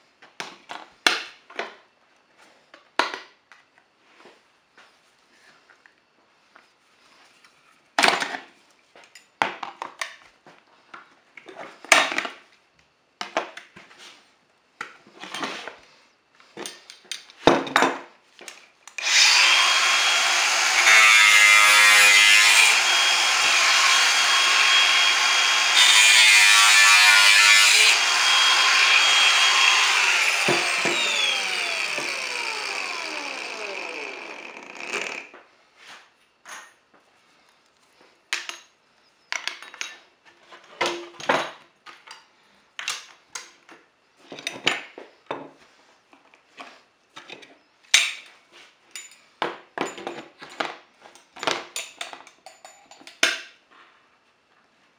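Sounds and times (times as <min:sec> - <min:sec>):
angle grinder cutting panel: 0:19.0 - 0:35.4.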